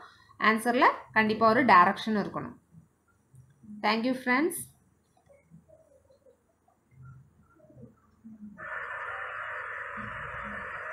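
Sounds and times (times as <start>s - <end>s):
faint scattered sounds: 4.6s - 10.9s
static-like hiss: 4.9s - 10.9s.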